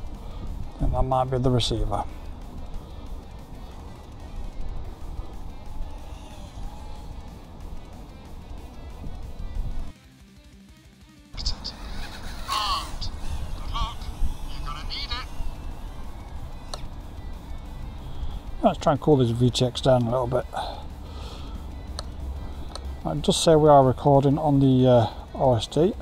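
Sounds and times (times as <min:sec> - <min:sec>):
outdoor noise: 0:00.0 - 0:10.0, 0:11.3 - 0:26.0
background music: 0:00.0 - 0:26.0.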